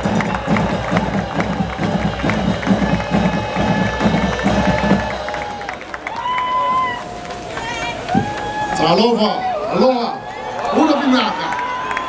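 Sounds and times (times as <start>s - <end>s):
band music with drum beat: 0.0s - 5.8s
crowd cheering: 0.0s - 12.0s.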